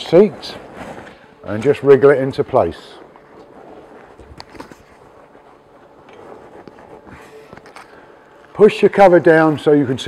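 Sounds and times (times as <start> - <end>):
fabric cover rustling on seat: 0.0 - 9.6.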